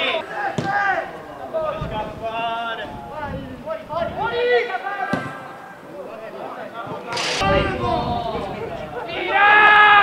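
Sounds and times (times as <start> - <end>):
players calling and shouting: 0.0 - 1.9.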